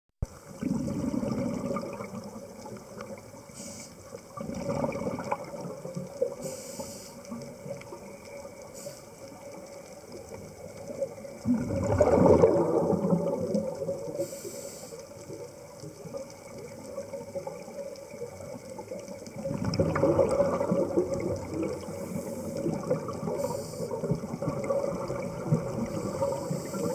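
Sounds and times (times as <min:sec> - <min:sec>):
exhaled bubbles rumbling underwater: 0:00.2 - 0:26.9.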